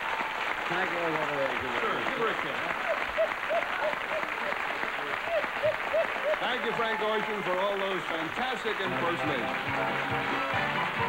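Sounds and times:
audience applauding: 0.0s - 11.0s
person laughing: 2.8s - 6.7s.

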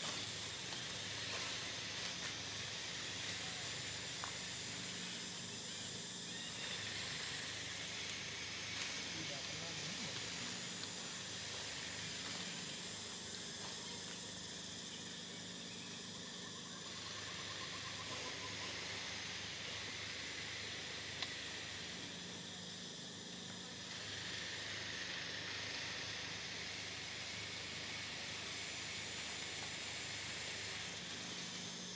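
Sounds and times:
outdoor background hiss: 0.0s - 31.9s.

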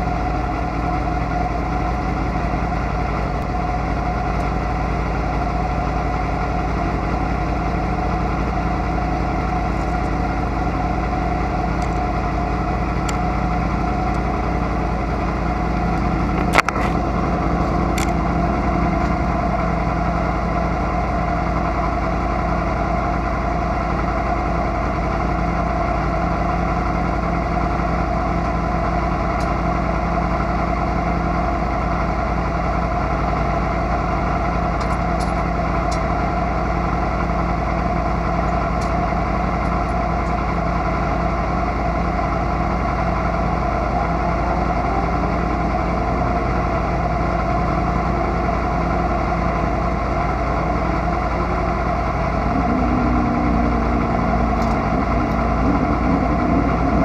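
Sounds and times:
motorcycle engine idling: 0.0s - 57.0s.

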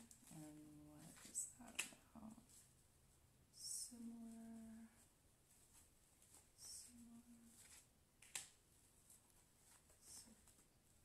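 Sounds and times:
card snapping: 8.2s - 8.6s.

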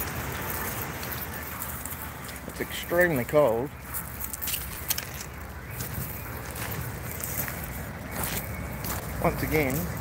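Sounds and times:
footsteps on gravel: 0.0s - 10.0s
wind buffeting microphone: 3.7s - 10.0s.

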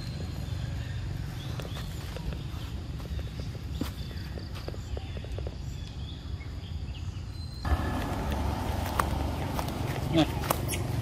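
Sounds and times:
outdoor low rumble: 7.6s - 11.0s.

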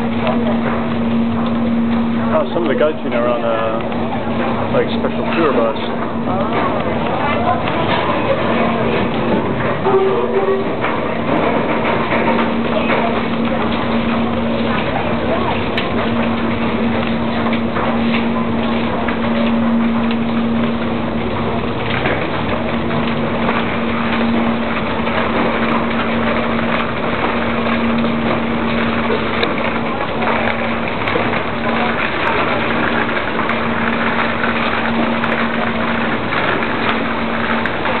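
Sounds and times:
crowd walking: 0.0s - 38.0s
ferry engine humming: 0.0s - 38.0s.

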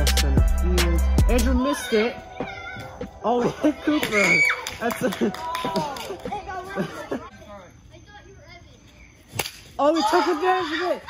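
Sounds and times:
people shouting: 1.6s - 6.0s.

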